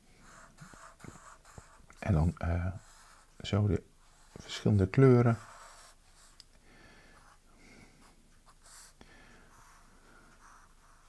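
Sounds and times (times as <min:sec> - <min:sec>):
marker drawing on paper: 0:00.2 - 0:06.4, 0:08.0 - 0:11.0.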